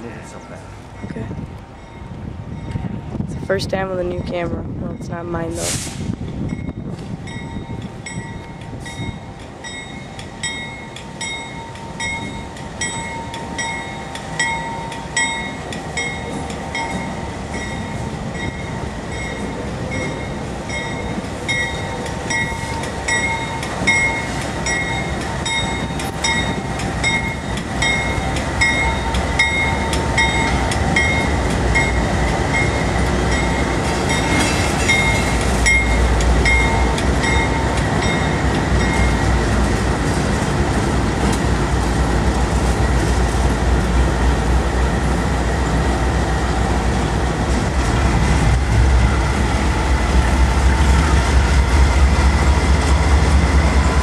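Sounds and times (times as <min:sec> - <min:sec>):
diesel locomotive engine rumble: 0:00.0 - 0:54.0
locomotive bell ringing: 0:06.5 - 0:39.4.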